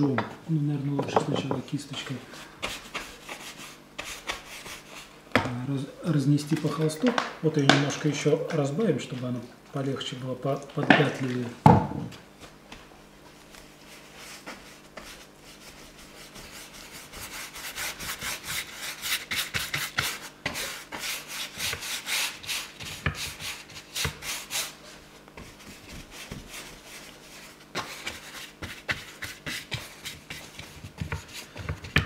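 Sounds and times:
brush scrubbing paste on canvas: 2.6s - 5.1s, 13.6s - 32.0s.

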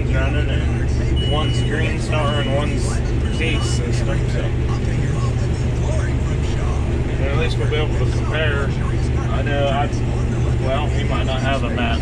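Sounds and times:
combine harvester engine humming: 0.0s - 12.0s.

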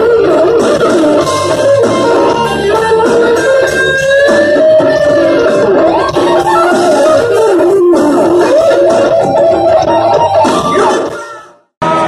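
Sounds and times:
bass guitar: 0.0s - 12.0s
drums: 0.0s - 12.0s.

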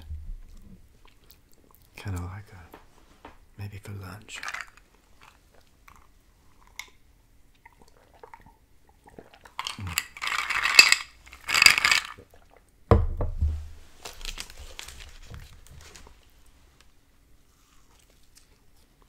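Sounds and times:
dull thump: 12.9s - 13.8s
paper wrapper crinkling: 13.9s - 16.3s.

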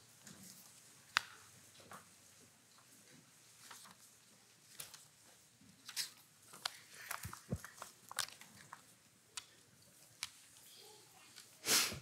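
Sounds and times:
paper sheets clicking and crackling: 3.6s - 4.0s, 4.7s - 5.1s, 5.8s - 9.5s.

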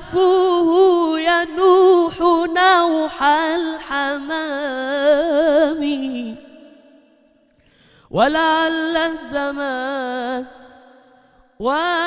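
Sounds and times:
breath in: 7.4s - 8.1s.

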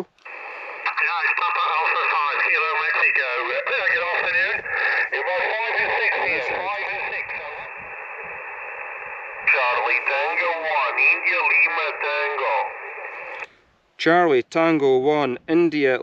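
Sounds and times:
radio band hiss: 0.0s - 13.5s
radio speech through speaker: 0.0s - 13.5s.

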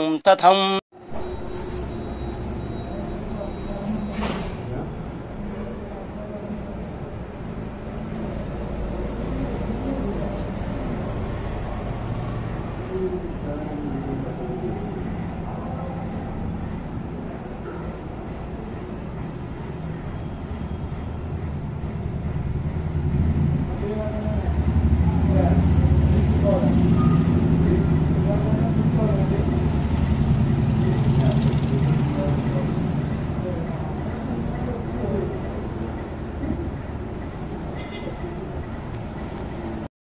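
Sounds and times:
indistinct voices: 0.0s - 39.9s
vehicle engine rumble: 1.0s - 39.8s.

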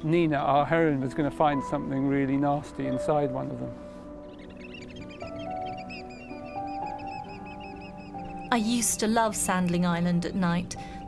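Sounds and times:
slow background music: 0.0s - 11.0s
birds piping short high calls: 3.8s - 9.4s.

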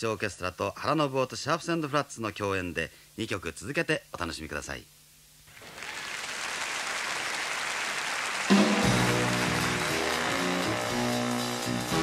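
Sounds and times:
audience applauding: 5.5s - 11.0s
jazz big band playing: 8.5s - 12.0s.

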